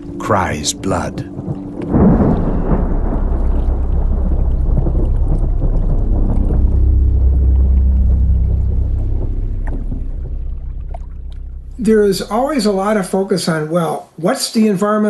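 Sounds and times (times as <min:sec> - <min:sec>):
deep steady rumble: 0:00.0 - 0:13.4
sudden hit: 0:01.9 - 0:13.0.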